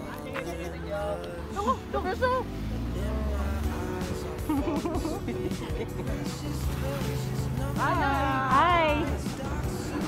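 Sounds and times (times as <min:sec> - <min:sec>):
small truck engine passing: 0:00.6 - 0:10.0.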